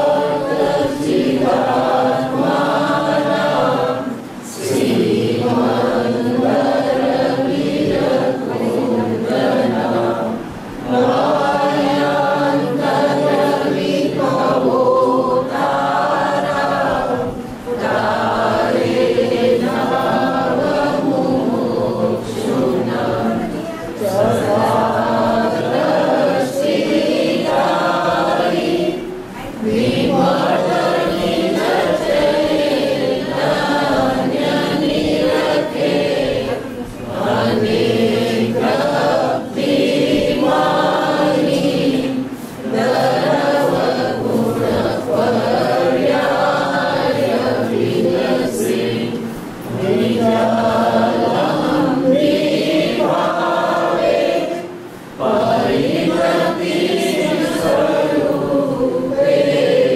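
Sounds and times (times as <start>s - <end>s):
group chanting in unison: 0.0s - 59.9s.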